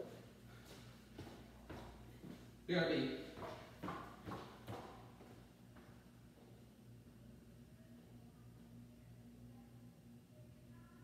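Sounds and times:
footsteps on tiled floor: 0.0 - 2.6, 3.2 - 6.6.

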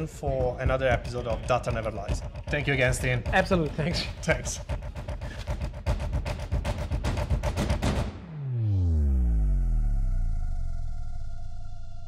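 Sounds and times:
low rumble: 8.4 - 12.0.

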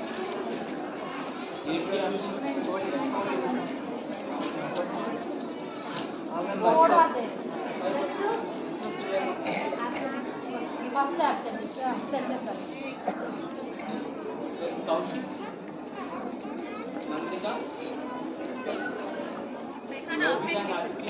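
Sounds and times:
chatter of many voices: 0.0 - 21.0
people talking in background: 0.0 - 21.0.

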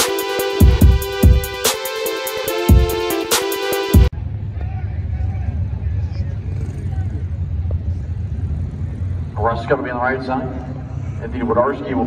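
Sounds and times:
car engines idling: 4.1 - 12.0
faint voices: 4.2 - 12.0.

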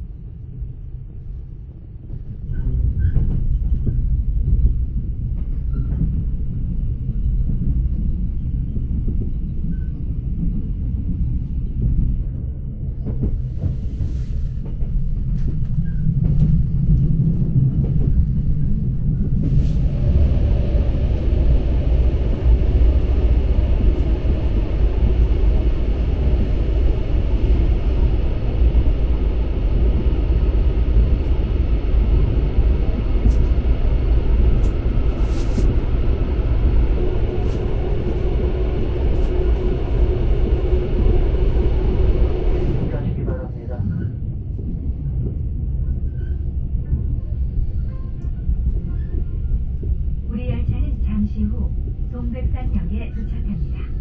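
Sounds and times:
train carriage rumbling on rails: 0.0 - 54.0.

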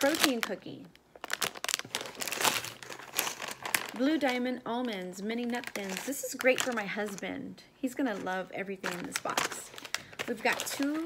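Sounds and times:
plastic wrappers crinkling: 0.0 - 7.3, 8.0 - 11.0.

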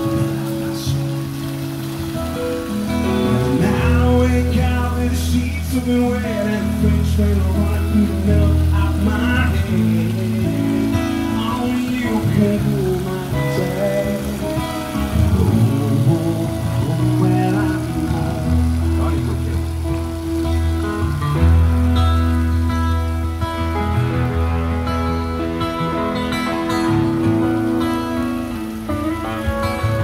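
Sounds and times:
bass notes: 0.0 - 30.0
guitar: 0.0 - 30.0
water running over a grate: 0.0 - 30.0
person singing: 3.3 - 19.2.

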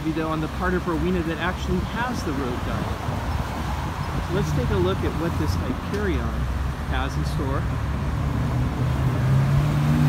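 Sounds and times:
cars driving past: 0.0 - 10.0
vehicle engine passing close: 2.7 - 10.0.

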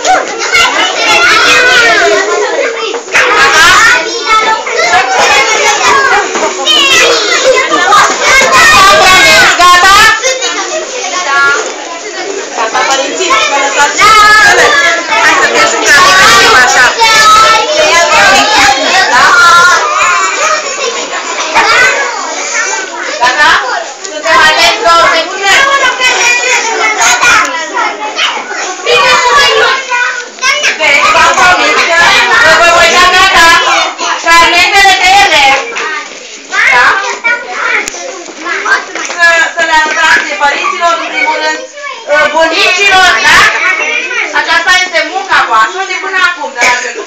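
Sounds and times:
young children talking and calling: 0.0 - 47.0.

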